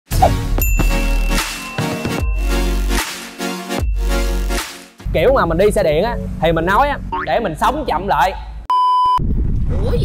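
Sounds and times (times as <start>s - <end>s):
electronic music with deep bass: 0.2s - 5.4s
bright ding chime: 0.6s - 2.6s
high ringing tone: 3.6s - 4.4s.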